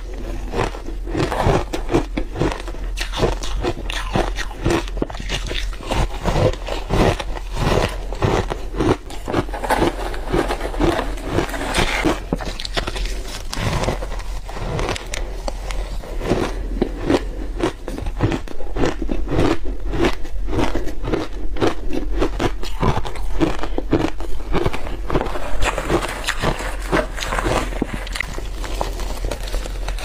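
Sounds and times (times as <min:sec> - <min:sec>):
shaved ice being chewed: 0:00.0 - 0:30.0.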